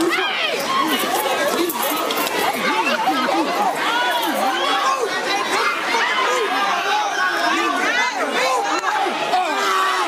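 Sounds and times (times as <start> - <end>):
voices shouting: 0.0 - 10.0.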